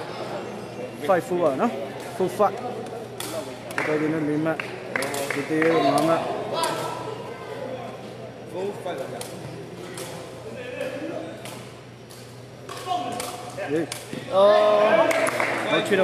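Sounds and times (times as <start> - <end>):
crowd voices and calls: 0.0 - 16.0.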